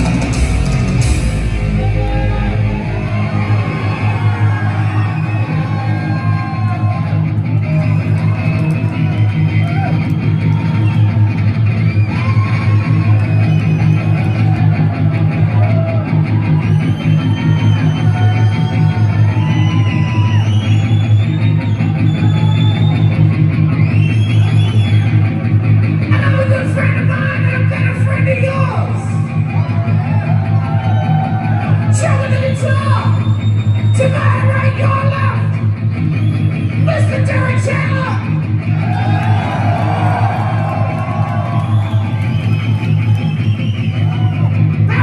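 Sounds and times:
thrash metal band playing live: 0.0 - 20.4.

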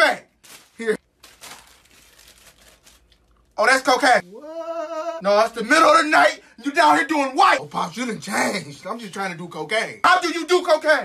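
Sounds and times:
plastic bag crinkling: 0.3 - 3.6.

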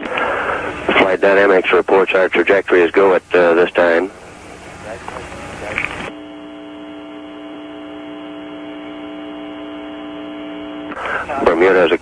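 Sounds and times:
electrical hum on telephone line: 0.0 - 12.0.

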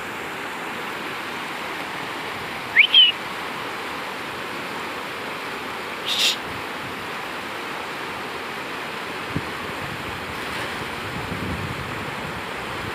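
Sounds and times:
river rushing through rapids: 0.0 - 12.9
high whistle notes: 2.7 - 3.2.

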